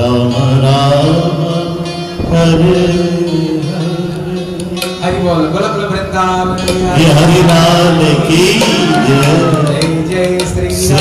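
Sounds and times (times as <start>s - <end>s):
man chanting devotional melody: 0.0s - 11.0s.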